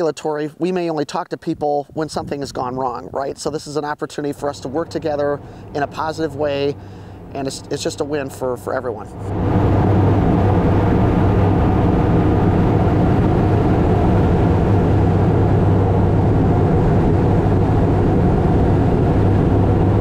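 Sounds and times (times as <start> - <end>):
airplane engine and propeller drone: 4.3 - 20.0.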